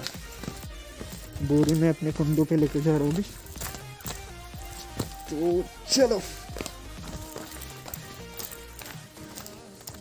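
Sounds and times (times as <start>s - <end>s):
music with held notes: 0.0s - 10.0s.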